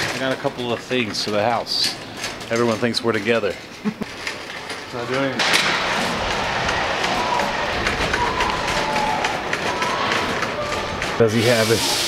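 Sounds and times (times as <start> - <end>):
trolley rolling over concrete: 0.0 - 12.0.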